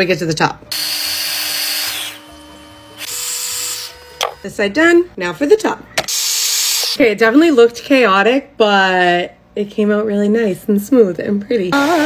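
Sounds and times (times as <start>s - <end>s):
hair styler blowing air: 11.8s - 12.0s.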